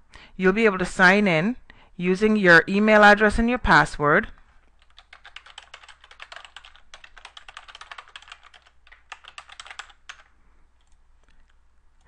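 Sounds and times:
computer keyboard typing: 0:04.4 - 0:12.0.

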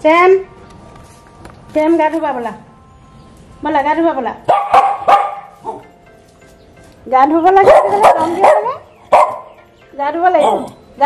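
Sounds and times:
dog barking: 0:04.5 - 0:05.9, 0:07.6 - 0:09.6, 0:10.4 - 0:10.8.

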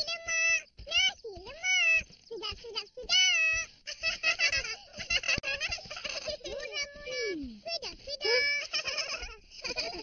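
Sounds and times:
cartoon child voices chattering: 0:00.0 - 0:03.7, 0:06.0 - 0:09.2.

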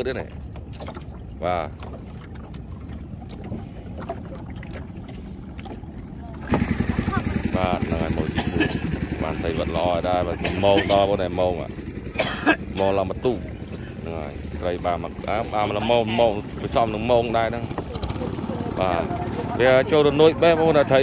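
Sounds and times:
boat engine running: 0:00.0 - 0:21.0
low background hum: 0:00.3 - 0:21.0
voices talking: 0:06.0 - 0:21.0.

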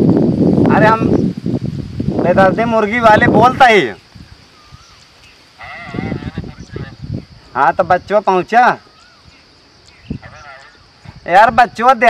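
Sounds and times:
farm animal bleating: 0:05.6 - 0:06.9.

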